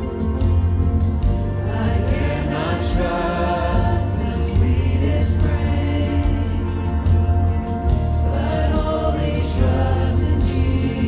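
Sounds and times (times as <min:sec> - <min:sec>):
acoustic guitar: 0:00.0 - 0:11.0
bass guitar: 0:00.0 - 0:11.0
voices singing along: 0:01.6 - 0:07.2, 0:08.3 - 0:11.0
woman singing lead vocal: 0:08.3 - 0:11.0.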